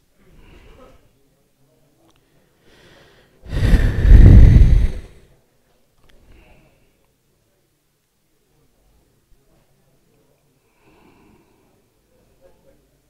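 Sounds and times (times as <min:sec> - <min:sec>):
faint breaths: 0:00.0 - 0:01.2, 0:02.0 - 0:05.4, 0:06.1 - 0:07.2, 0:09.5 - 0:12.8
loud breath exhaled: 0:02.7 - 0:05.2.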